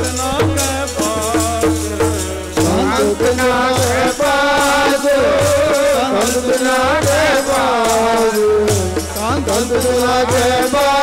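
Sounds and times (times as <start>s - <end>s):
hand drum: 0.0s - 11.0s
instrumental accompaniment: 0.0s - 11.0s.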